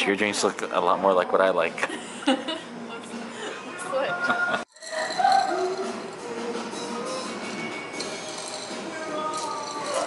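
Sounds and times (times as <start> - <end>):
background music: 2.2 - 10.0
glassware clinking: 4.7 - 10.0.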